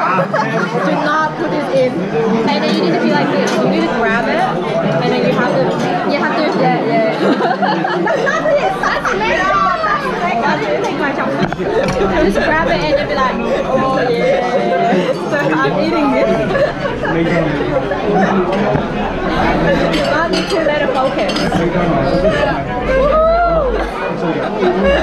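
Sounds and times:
general chatter: 0:00.0 - 0:25.0
women talking and laughing: 0:00.0 - 0:25.0.

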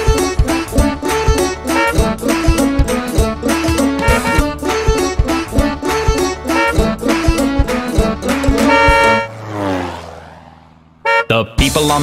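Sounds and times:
children's song instrumental: 0:00.0 - 0:09.3
cartoon downward slide effect: 0:08.4 - 0:10.0.

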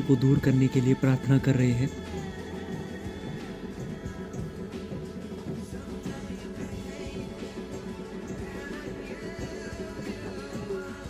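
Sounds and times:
steady drumming: 0:00.0 - 0:11.0.

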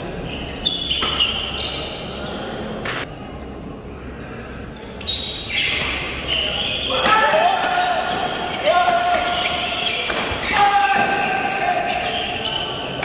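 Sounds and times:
racket hitting shuttlecock: 0:01.0 - 0:01.4
people shouting: 0:06.9 - 0:12.0.

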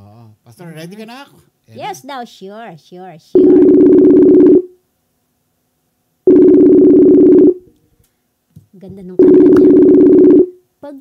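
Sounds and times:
warbling phone ringback tone: 0:03.4 - 0:04.7, 0:06.3 - 0:07.6, 0:09.2 - 0:10.5.

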